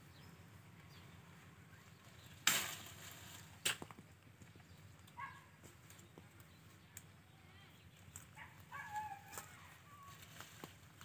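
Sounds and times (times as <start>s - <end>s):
rustle of leaves: 0.0s - 3.9s, 4.5s - 11.0s
pole striking fruit cluster: 2.1s - 4.0s
sharp crack: 2.3s - 4.0s.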